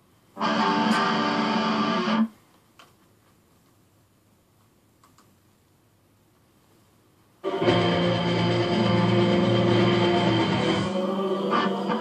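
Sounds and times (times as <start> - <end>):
faint click: 4.6 - 5.3.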